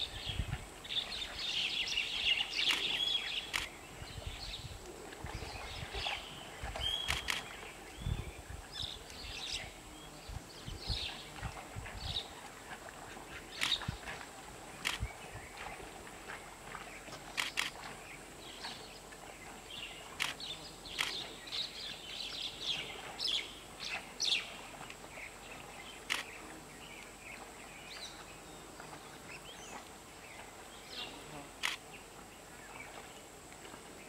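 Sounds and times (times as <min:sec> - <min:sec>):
small birds chirping: 0:05.5 - 0:11.3.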